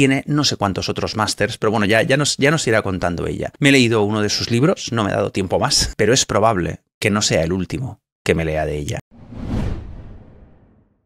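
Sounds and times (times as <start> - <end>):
whoosh sound effect: 9.1 - 11.0.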